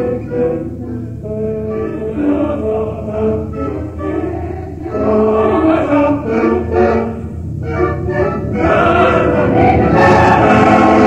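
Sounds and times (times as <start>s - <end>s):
opera chorus singing: 0.0s - 11.0s
orchestra playing: 0.0s - 11.0s.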